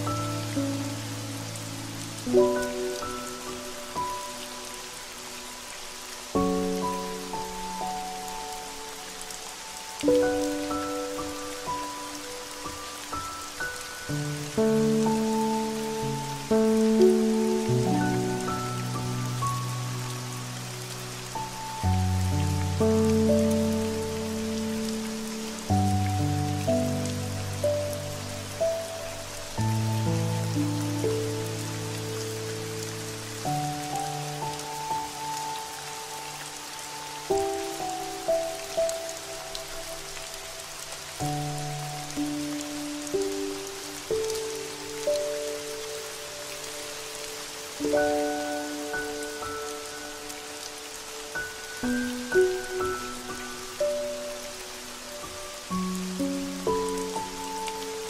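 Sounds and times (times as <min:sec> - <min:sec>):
slow calm music: 0:00.0 - 0:58.0
steady rain falling: 0:00.0 - 0:58.0.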